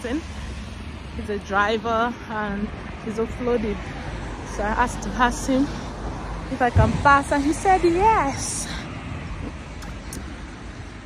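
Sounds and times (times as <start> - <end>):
road traffic hiss and rumble: 0.0 - 11.0.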